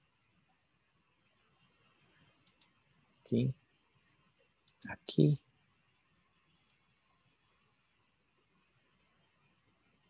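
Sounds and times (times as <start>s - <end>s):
computer mouse clicks: 2.4s - 2.8s, 4.6s - 5.0s.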